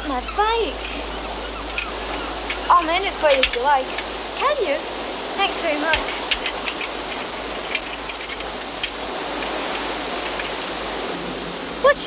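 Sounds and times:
surf breaking on rocky shore: 0.0s - 12.0s.

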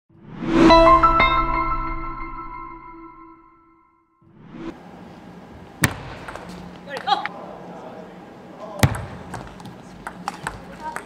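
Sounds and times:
table tennis hall ambience: 4.8s - 11.0s
table tennis ball struck: 5.8s - 7.1s, 8.8s - 10.6s.

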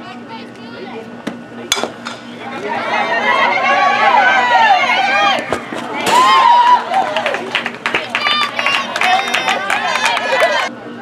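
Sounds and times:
bat hitting softball: 1.7s - 2.4s
spectators shouting and cheering: 2.3s - 10.8s.

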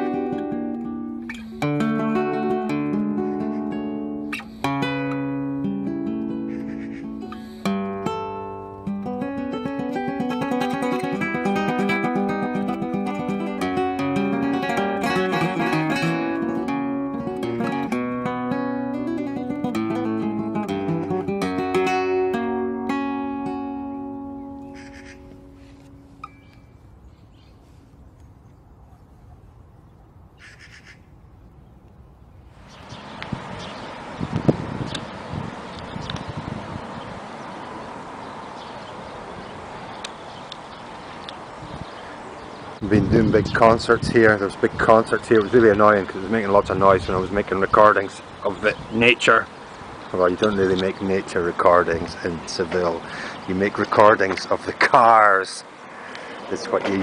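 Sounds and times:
fingerstyle flamenco guitar: 0.0s - 26.5s.

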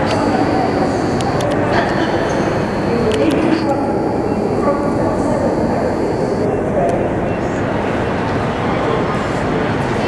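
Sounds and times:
din of voices: 0.0s - 10.0s
high steady whine: 0.0s - 10.0s.

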